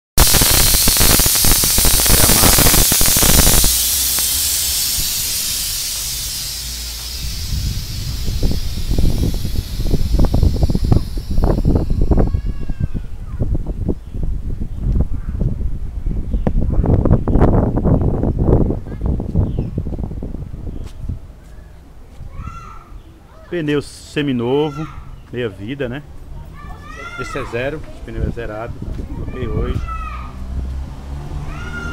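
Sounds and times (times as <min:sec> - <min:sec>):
compressed air hissing: 0:00.2 - 0:12.6
low rumbling gusts: 0:00.2 - 0:21.3.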